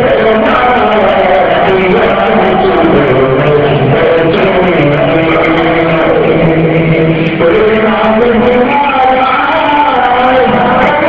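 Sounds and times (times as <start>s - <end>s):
men chanting: 0.0s - 11.0s.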